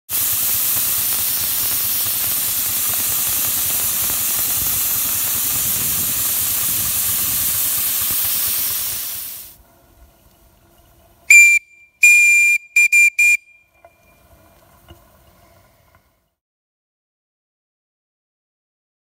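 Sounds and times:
steam hissing: 0:00.1 - 0:09.8, 0:11.3 - 0:13.4
steam whistle toots: 0:11.3 - 0:14.1.

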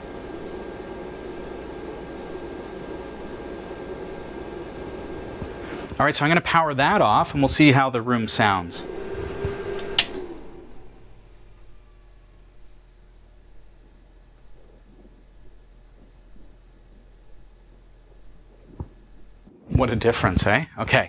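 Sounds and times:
hard drives winding down: 0:00.0 - 0:19.8
cooling fan running: 0:00.0 - 0:20.6
faint low hum: 0:00.0 - 0:21.0
switch click: 0:09.8 - 0:10.4.

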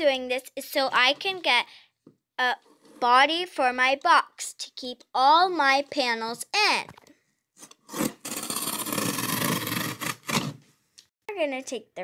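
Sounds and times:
knife scraping through cardboard: 0:07.6 - 0:10.6.

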